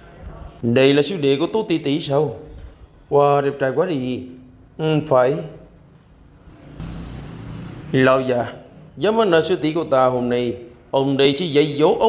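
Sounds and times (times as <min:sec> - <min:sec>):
rushing noise: 0:06.4 - 0:08.9.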